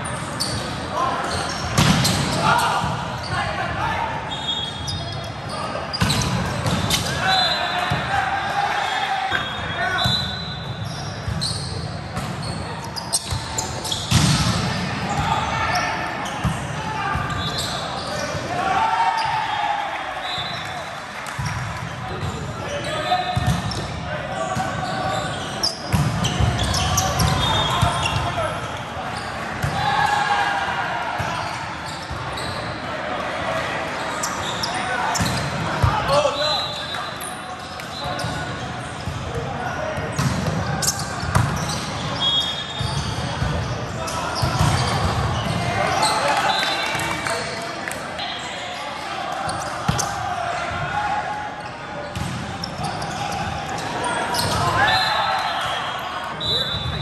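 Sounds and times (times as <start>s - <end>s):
players calling and shouting: 0.0s - 57.0s.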